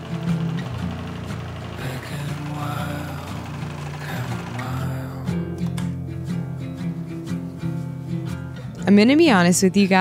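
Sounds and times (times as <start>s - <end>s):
sewing machine stitching: 0.0s - 5.3s
background music: 0.0s - 10.0s.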